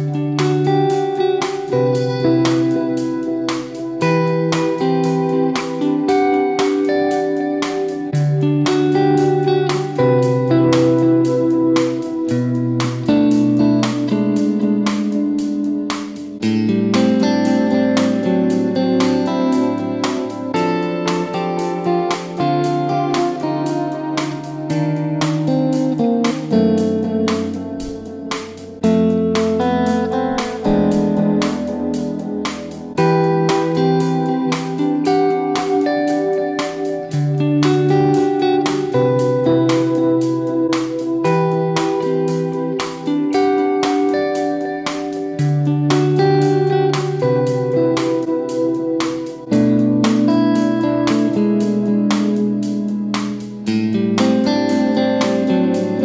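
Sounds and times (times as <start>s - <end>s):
electric guitar with reverb: 0.0s - 56.0s
looped guitar part: 0.0s - 56.0s
bass notes: 24.1s - 34.2s.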